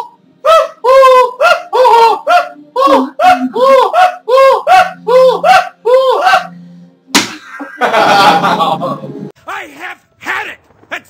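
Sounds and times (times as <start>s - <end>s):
hand slap: 7.1s - 7.4s.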